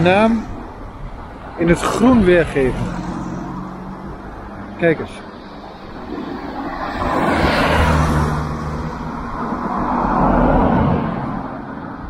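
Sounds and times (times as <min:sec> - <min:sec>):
vehicles passing by: 0:00.0 - 0:12.0.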